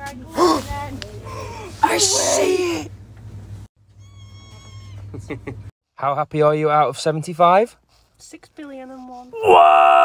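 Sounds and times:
low shop hum: 0:00.0 - 0:05.7.

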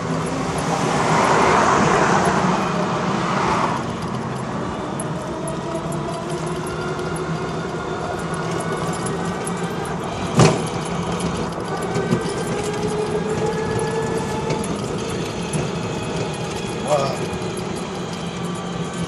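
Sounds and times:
tricycle road and rattle noise: 0:00.0 - 0:19.0.

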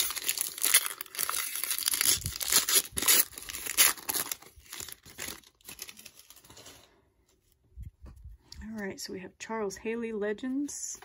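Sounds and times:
foil wrapper tearing and crinkling: 0:00.0 - 0:06.5.

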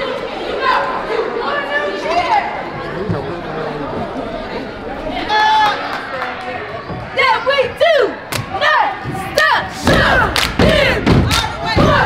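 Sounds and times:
cheer squad chanting: 0:07.2 - 0:12.0
hands clapping: 0:10.3 - 0:11.6.

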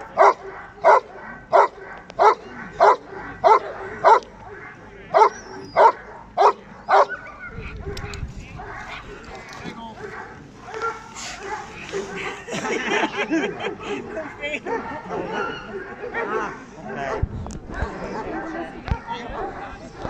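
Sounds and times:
dog barking loudly: 0:00.0 - 0:12.4.

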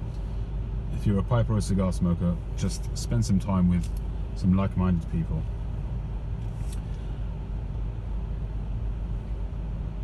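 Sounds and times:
low road traffic rumble: 0:00.0 - 0:10.0
vehicle engines idling: 0:00.0 - 0:10.0.

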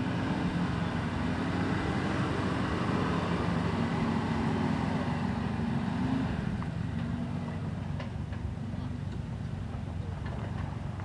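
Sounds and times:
engine running at low revs: 0:00.0 - 0:11.0.

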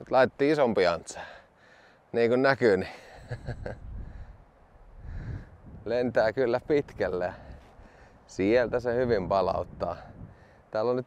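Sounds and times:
wind buffeting microphone: 0:03.2 - 0:10.6.

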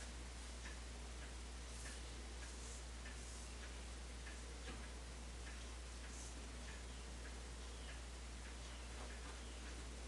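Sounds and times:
faint ticking: 0:00.0 - 0:10.0
steady low hum: 0:00.0 - 0:10.0.

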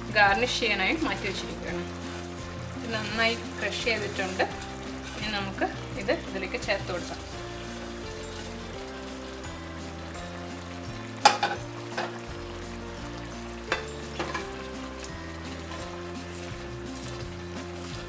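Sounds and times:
food sizzling in a pot: 0:00.0 - 0:18.0
soft background music: 0:00.0 - 0:18.0.

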